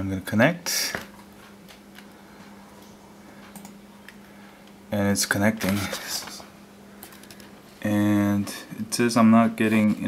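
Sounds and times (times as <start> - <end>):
steady low hum: 0.0 - 10.0
faint clicks at computer desk: 2.8 - 4.8.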